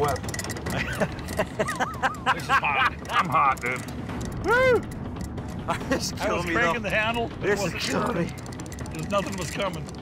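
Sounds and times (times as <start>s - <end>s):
man laughing and talking: 0.6s - 3.8s, 5.6s - 6.9s.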